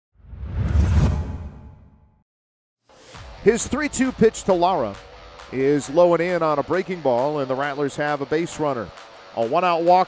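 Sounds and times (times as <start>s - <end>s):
whoosh with deep rumble: 0.2s - 1.9s.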